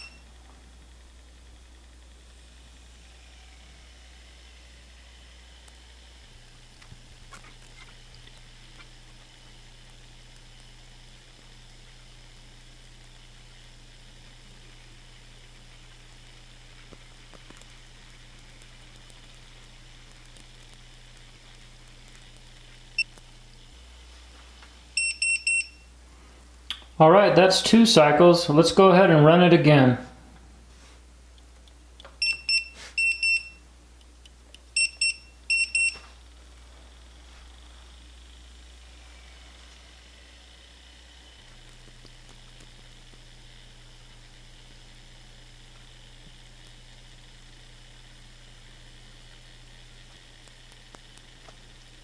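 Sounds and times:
high double beep: 0.0s - 0.2s, 25.0s - 25.8s, 32.2s - 33.6s, 34.8s - 36.0s
faint electrical hum: 0.0s - 52.0s.

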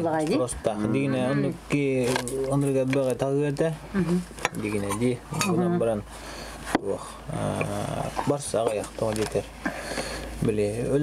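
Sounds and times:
man talking: 0.3s - 3.8s, 4.5s - 6.1s, 6.7s - 9.5s, 10.4s - 11.0s.

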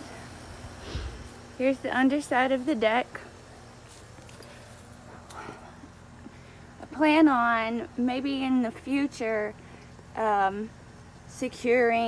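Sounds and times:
faint footsteps: 3.2s - 6.4s.

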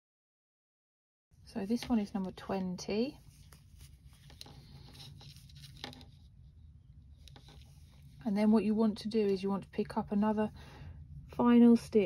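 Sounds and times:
low steady hum: 1.4s - 12.0s
yarn rustling: 3.0s - 6.5s.

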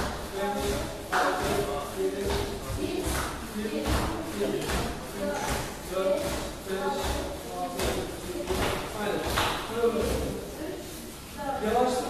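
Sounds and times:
background voices: 0.1s - 10.4s.

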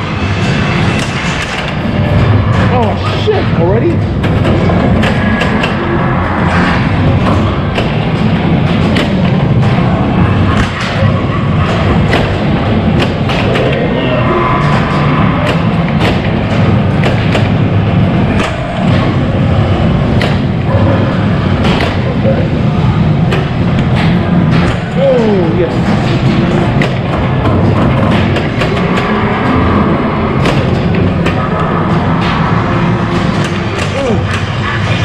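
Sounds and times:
pinball music and sound effects: 0.0s - 35.0s
pinball knocks and thuds: 15.4s - 22.1s, 23.2s - 32.5s.

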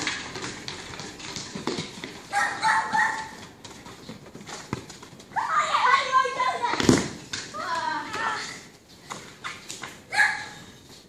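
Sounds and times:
children shouting: 5.3s - 6.8s.

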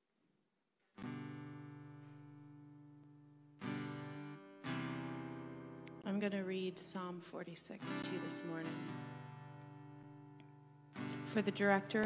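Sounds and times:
acoustic guitar chord ringing: 1.0s - 12.0s.

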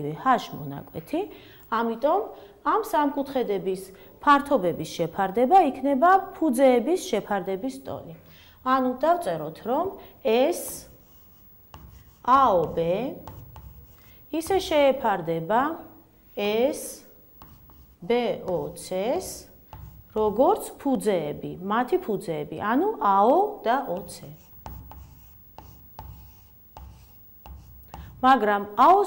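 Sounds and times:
chalk scratching on a chalkboard: 10.4s - 14.8s, 17.4s - 20.8s, 23.9s - 28.3s.

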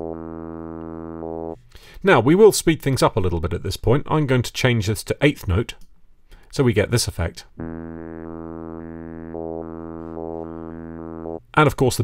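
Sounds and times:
filtered synthesizer note: 0.0s - 1.6s, 7.6s - 11.6s.

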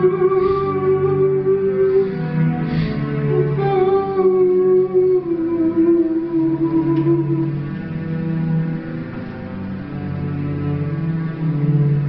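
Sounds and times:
slow sustained music: 0.0s - 12.0s.

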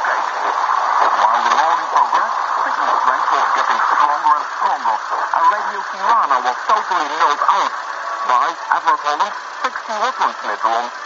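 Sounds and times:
man narrating over radio speaker: 0.0s - 11.0s.

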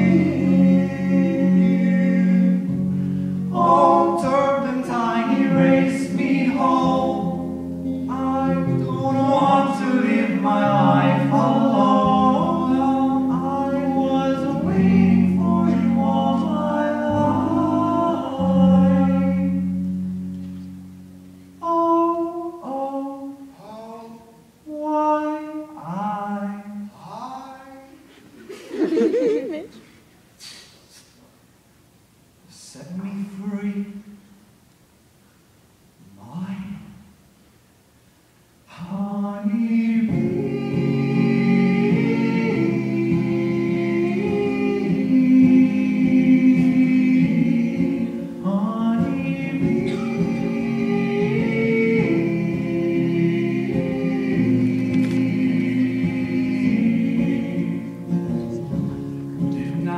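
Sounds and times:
person singing long notes: 0.0s - 20.2s
live music held chords: 0.0s - 22.6s, 39.9s - 59.9s.

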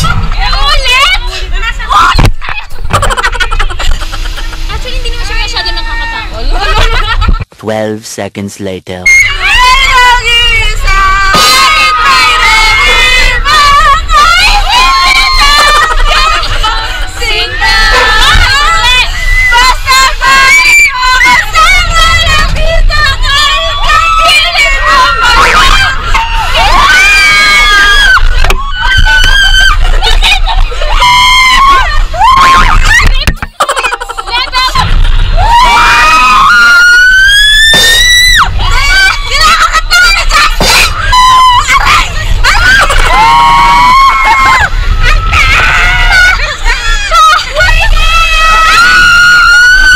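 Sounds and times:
women screaming and laughing: 0.0s - 7.4s, 9.1s - 49.9s.

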